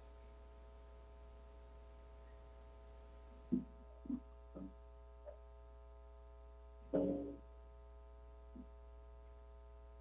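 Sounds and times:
electrical mains hum: 0.0s - 10.0s
faint steady higher tones: 0.0s - 10.0s.

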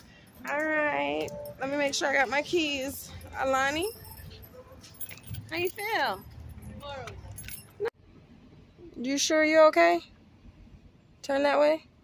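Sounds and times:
keys jingling: 0.0s - 7.9s.

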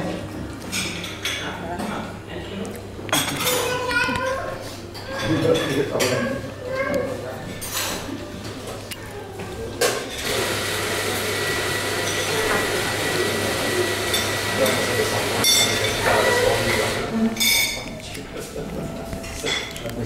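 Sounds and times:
murmur of voices: 0.0s - 20.0s
cutlery clinking on china plate: 3.1s - 3.7s, 5.0s - 6.4s, 14.1s - 16.3s, 17.4s - 18.2s, 19.2s - 20.0s.

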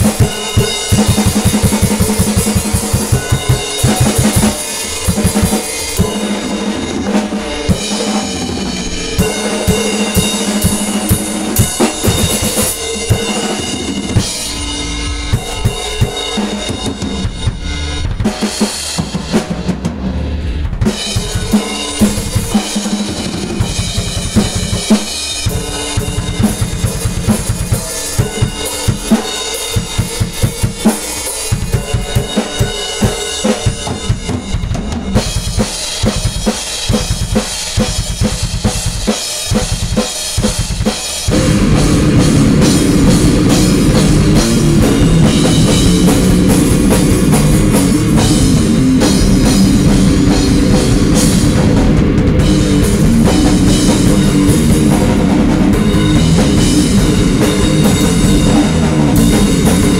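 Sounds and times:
cymbals: 0.0s - 59.9s.

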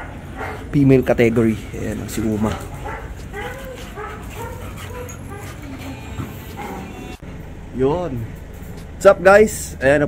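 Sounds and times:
dog whimpering: 1.7s - 7.2s.

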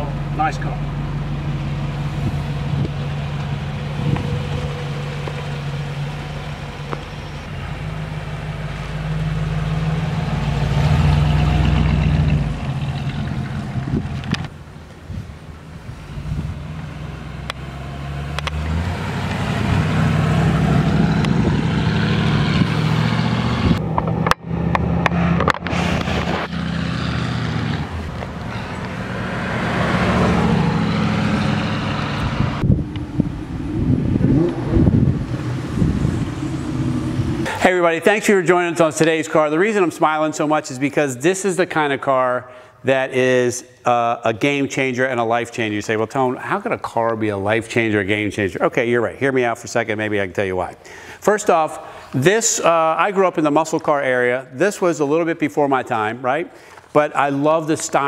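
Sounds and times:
car engine driving past: 1.6s - 14.4s, 16.3s - 37.8s.

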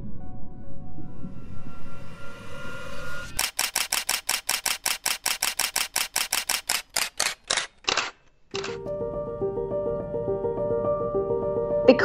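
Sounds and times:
music: 0.0s - 3.2s, 8.7s - 12.0s
camera shutter clicks: 3.4s - 8.8s.

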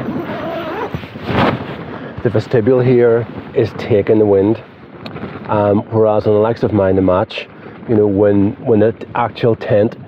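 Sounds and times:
wind flapping tent fabric: 0.0s - 10.0s.

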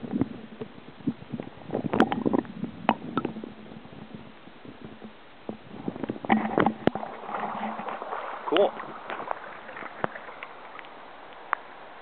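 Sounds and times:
water sloshing and gurgling: 0.0s - 12.0s.

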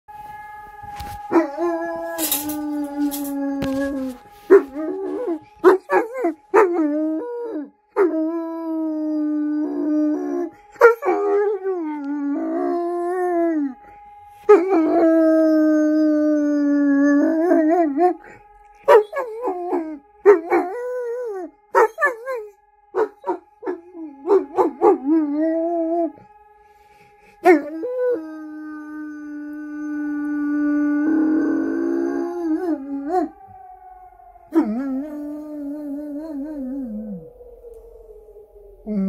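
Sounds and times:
sirens: 0.1s - 39.0s
dog howling: 1.0s - 8.3s, 18.8s - 26.2s, 27.4s - 39.0s.

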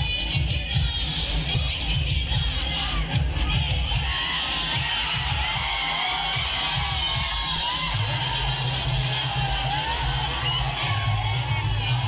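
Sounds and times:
crowd shouting and cheering: 0.0s - 12.0s
loud music with heavy bass beat: 0.0s - 12.0s.

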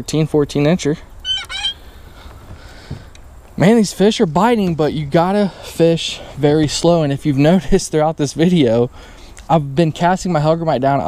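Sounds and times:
bird calling: 1.0s - 3.2s.

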